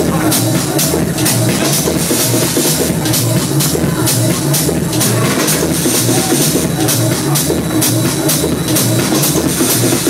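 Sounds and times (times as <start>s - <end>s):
techno over club sound system: 0.0s - 10.0s.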